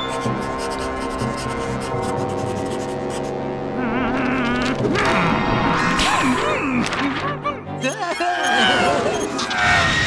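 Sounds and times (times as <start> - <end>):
scratchy pencil strokes: 0.0 - 3.4.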